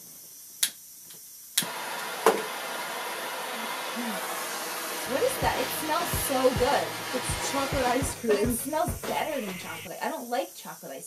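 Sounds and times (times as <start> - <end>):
blowtorch hissing: 1.6 - 9.9.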